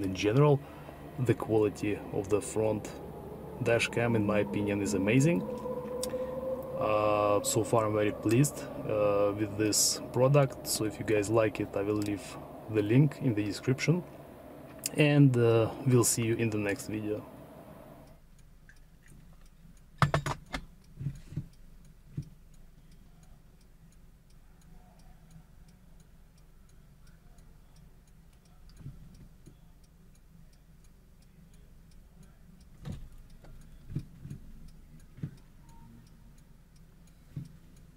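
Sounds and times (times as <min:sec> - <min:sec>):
low steady hum: 0:00.0 - 0:37.9.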